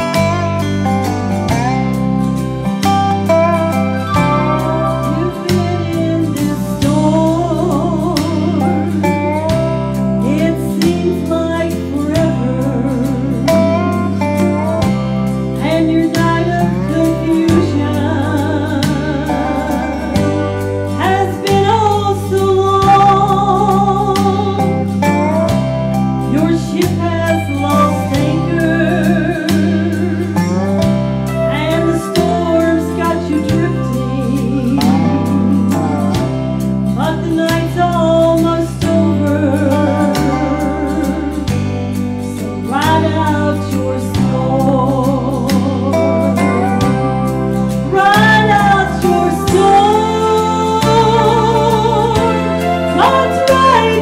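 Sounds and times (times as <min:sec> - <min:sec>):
country backing track: 0:00.0 - 0:54.0
guitar accompaniment: 0:00.0 - 0:54.0
woman singing gospel song: 0:04.4 - 0:09.6, 0:10.2 - 0:14.2, 0:15.6 - 0:24.9, 0:26.2 - 0:30.4, 0:31.5 - 0:36.2, 0:37.0 - 0:41.6, 0:42.3 - 0:47.2, 0:47.8 - 0:54.0.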